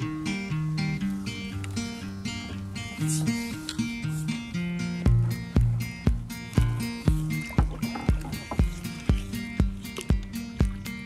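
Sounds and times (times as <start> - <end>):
held low bass notes: 0.0 - 11.0
background music with steady beat: 2.4 - 11.0.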